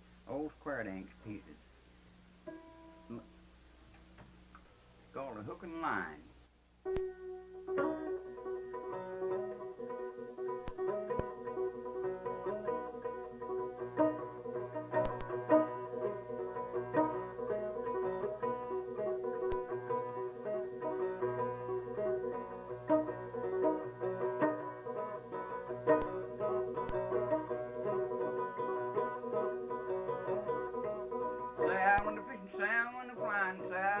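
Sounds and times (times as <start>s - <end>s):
banjo picking: 6.9s - 34.0s
man singing: 31.6s - 34.0s.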